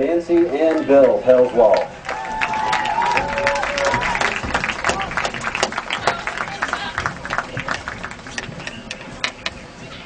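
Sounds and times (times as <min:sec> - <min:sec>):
spectators applauding: 0:00.2 - 0:08.5.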